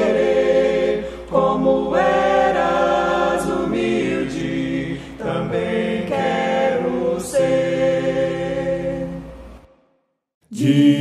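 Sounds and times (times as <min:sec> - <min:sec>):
group singing a hymn in harmony: 0:00.0 - 0:09.7, 0:10.5 - 0:11.0.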